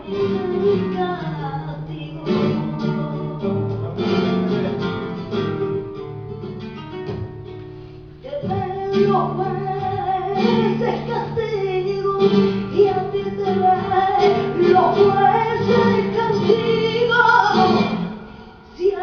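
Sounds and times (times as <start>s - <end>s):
flamenco acoustic guitar: 0.0s - 19.0s
woman singing ornamented line: 8.3s - 18.0s.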